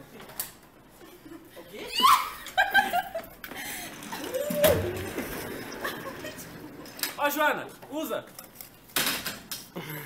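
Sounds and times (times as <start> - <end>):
young people laughing and calling: 0.9 - 7.2.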